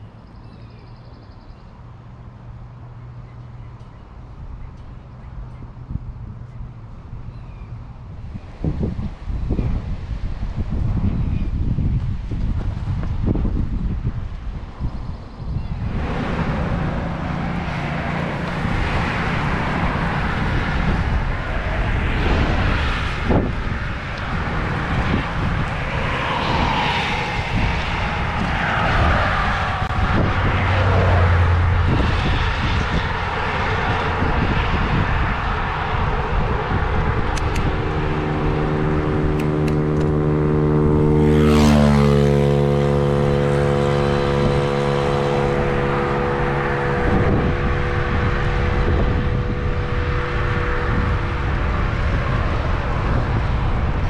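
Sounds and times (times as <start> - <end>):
road traffic going by: 0.0 - 54.0
wind rushing over microphone: 2.2 - 54.0
motorcycle engine drone overtaking: 10.6 - 54.0.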